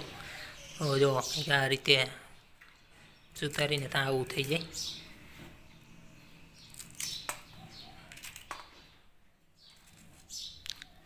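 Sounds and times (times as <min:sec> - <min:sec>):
birds chirping faintly: 0:00.0 - 0:11.0.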